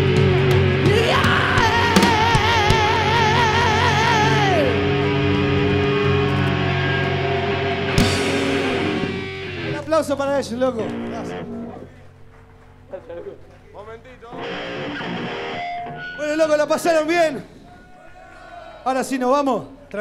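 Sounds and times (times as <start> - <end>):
heavy metal band chord: 0.0 - 11.9, 14.4 - 16.4
amplified guitar noise: 0.0 - 17.5
shouting voices: 0.8 - 4.8, 16.2 - 20.0.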